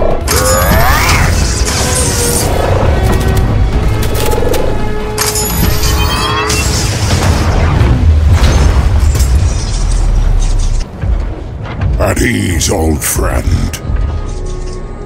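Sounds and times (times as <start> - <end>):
background music: 0.0 - 15.0.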